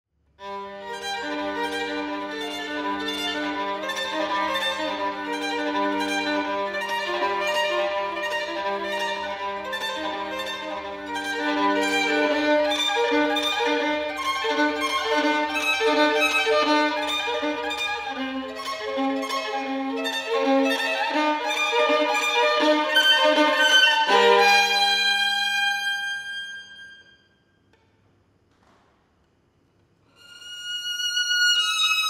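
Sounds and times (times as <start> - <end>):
violin playing: 0.4 - 27.3, 30.1 - 32.0.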